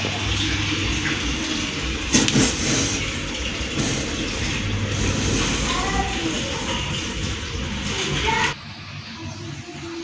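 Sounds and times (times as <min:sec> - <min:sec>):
loud water splash: 0:00.0 - 0:08.5
water running and splashing: 0:00.0 - 0:10.0.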